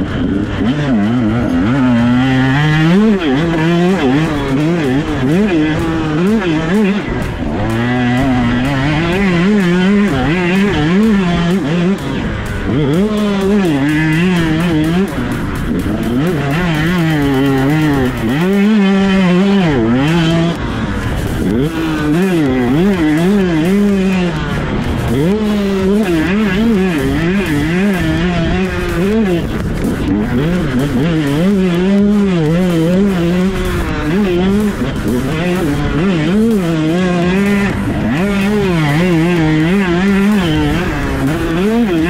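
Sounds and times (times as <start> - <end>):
two-stroke engine revving: 0.0 - 42.0.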